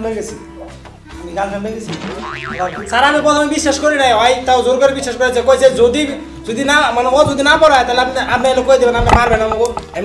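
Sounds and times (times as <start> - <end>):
background music: 0.0 - 10.0
cartoon wobbling pitch effect: 2.2 - 3.4
held pitched sound: 2.2 - 3.6.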